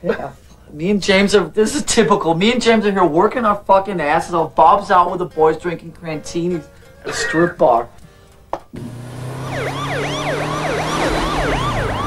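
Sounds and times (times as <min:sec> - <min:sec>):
emergency siren yelping: 0:09.1 - 0:12.0.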